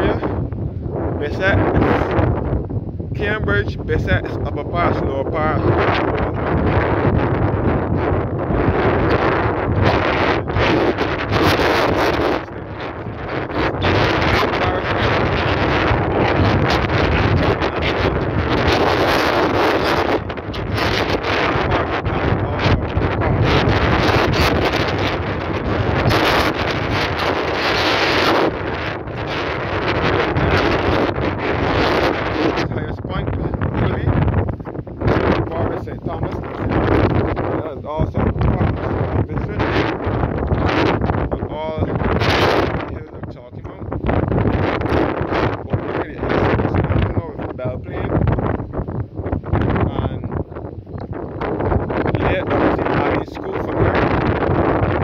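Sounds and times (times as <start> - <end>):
gusty wind buffeting microphone: 0.0 - 55.0.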